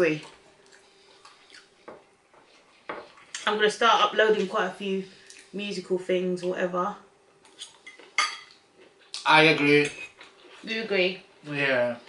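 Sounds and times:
forks clinking on plates: 7.5 - 8.6.

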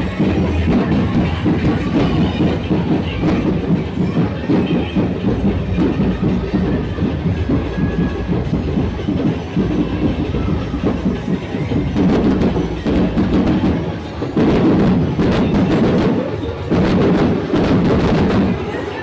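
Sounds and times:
fast driving drumbeats: 0.0 - 19.0.

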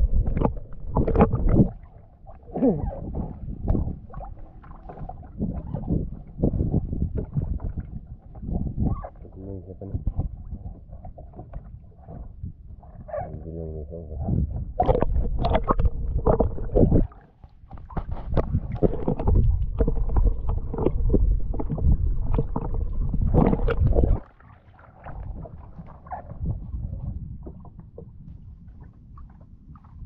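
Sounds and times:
water slapping against boat hull: 0.0 - 1.9, 14.7 - 26.5.

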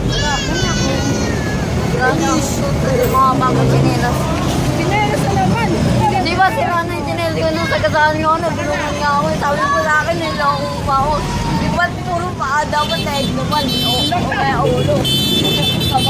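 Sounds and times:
people talking: 0.0 - 16.0
road traffic: 0.0 - 16.0.

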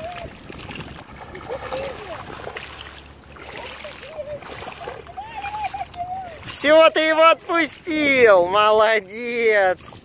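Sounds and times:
dog splashing in water: 0.0 - 6.5.

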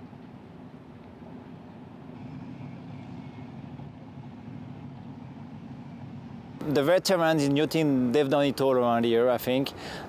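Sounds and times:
low mechanical rumble: 0.0 - 8.3
faint high whine: 0.0 - 9.5.

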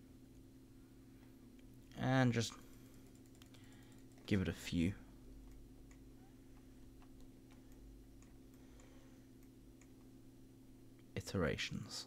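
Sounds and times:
low electrical hum: 0.0 - 12.0
computer mouse clicks: 2.9 - 4.4.

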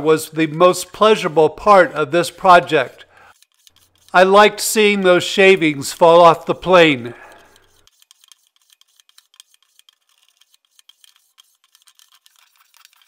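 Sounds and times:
hand plane scraping wood: 2.2 - 12.0.

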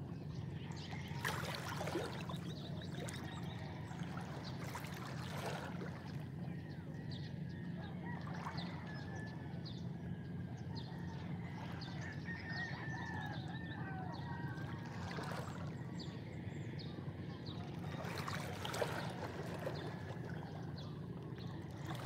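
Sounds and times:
rooster crowing: 12.1 - 14.5.

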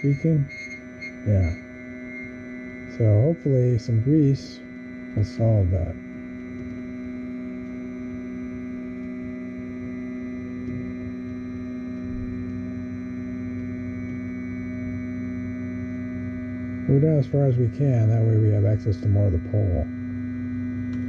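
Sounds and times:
printer motor whining: 0.0 - 21.0.

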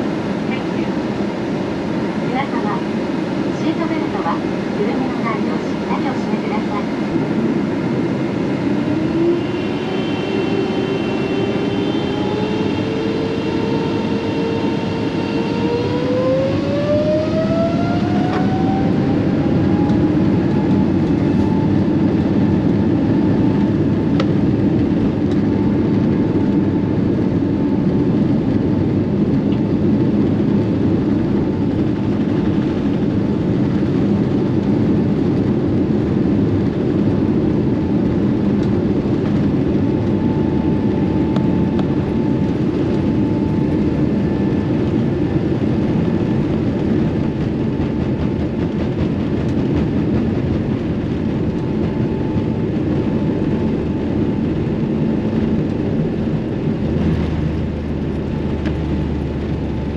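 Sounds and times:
jet engine roar: 0.0 - 59.9
jet engine whine: 0.0 - 59.9.

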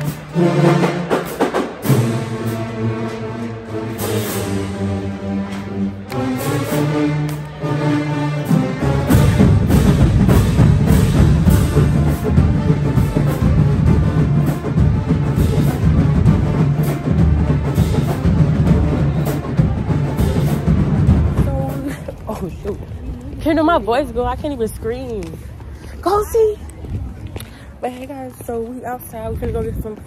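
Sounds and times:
marching band playing: 0.0 - 22.5
bass drums beating: 8.5 - 22.4.

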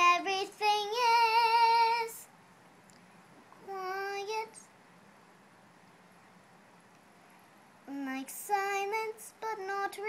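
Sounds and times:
faint room hiss: 0.0 - 10.0
girl singing low note: 3.5 - 4.7, 7.8 - 10.0.

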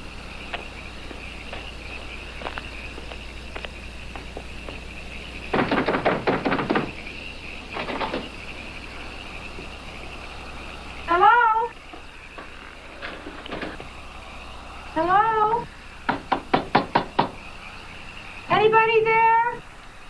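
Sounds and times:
loud rising calls: 0.0 - 20.0
sharp knocks on glass: 5.5 - 7.0, 16.1 - 17.4.

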